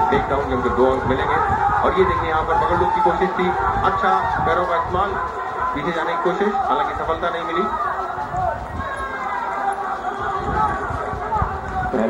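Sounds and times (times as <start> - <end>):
arena voices from television: 0.0 - 12.0.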